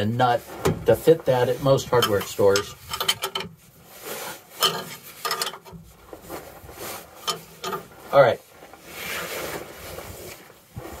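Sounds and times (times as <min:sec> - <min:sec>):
wrench metal-on-metal strokes: 0:01.9 - 0:03.6, 0:04.5 - 0:05.8, 0:07.2 - 0:07.9.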